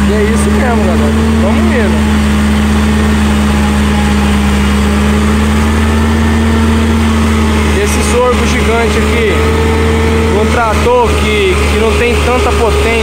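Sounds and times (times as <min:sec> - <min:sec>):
forage harvester chopping: 0:00.0 - 0:13.0
tractor engine under load: 0:00.0 - 0:13.0.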